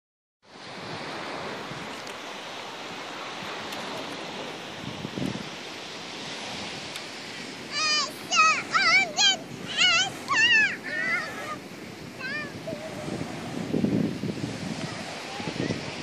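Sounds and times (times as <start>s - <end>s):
sea surf: 0.4s - 16.0s
wind on a beach: 0.4s - 16.0s.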